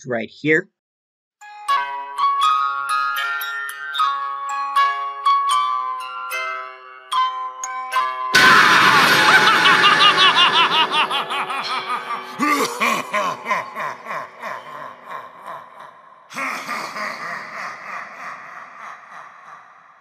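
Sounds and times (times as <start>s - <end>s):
animatronic clown cackling laugh: 8.4s - 20.0s.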